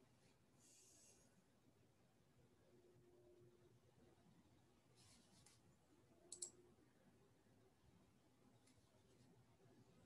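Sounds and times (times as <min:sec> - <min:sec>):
small sharp clicks: 0:06.3 - 0:06.6.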